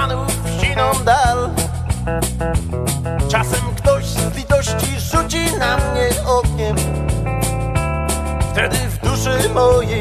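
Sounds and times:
bass line: 0.0s - 10.0s
country band music: 0.0s - 10.0s
plucked guitars: 0.0s - 10.0s
steady drum beat: 0.0s - 10.0s.

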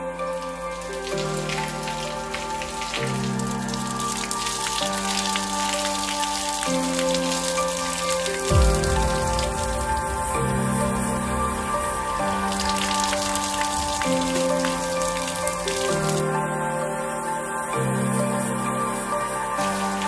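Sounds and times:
water draining through plug hole: 0.0s - 16.4s
slow background music: 0.0s - 20.0s
water splashing into stone sink: 0.4s - 16.3s
low thump: 8.5s - 13.4s.

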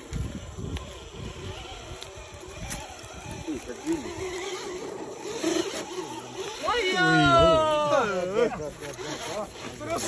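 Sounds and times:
small electric motor whining: 0.0s - 10.0s.

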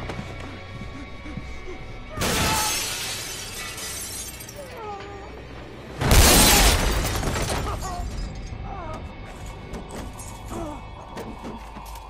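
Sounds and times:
window glass shattering: 2.2s - 4.6s, 6.0s - 8.3s.

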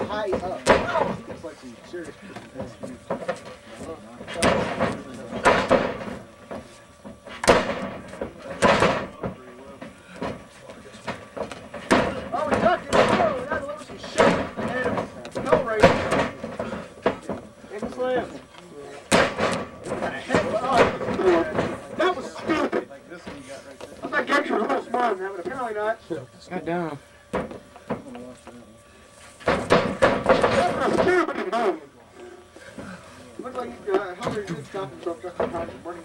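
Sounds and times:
men talking and laughing: 0.0s - 7.3s, 7.9s - 26.4s, 30.2s - 36.0s.

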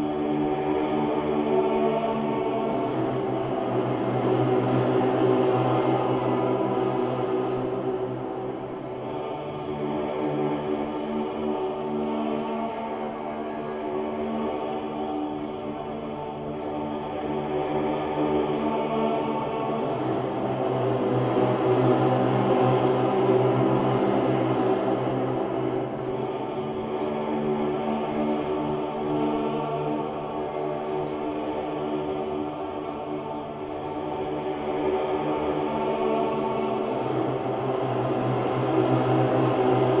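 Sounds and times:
cello drone: 0.0s - 40.0s.

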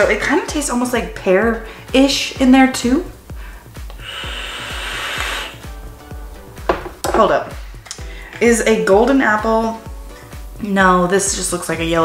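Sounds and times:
soft background music: 0.0s - 12.0s
airy hiss of vape puff: 3.3s - 5.8s.

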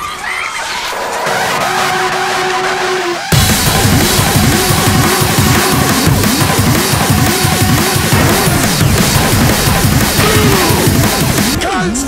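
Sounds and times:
hissing noisy texture: 1.0s - 11.6s.

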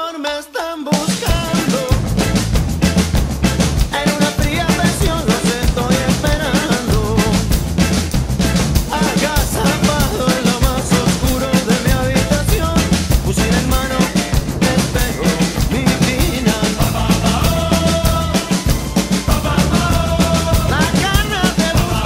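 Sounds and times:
recorded rock song: 0.0s - 22.0s
drum kit playing a beat: 0.9s - 22.0s.

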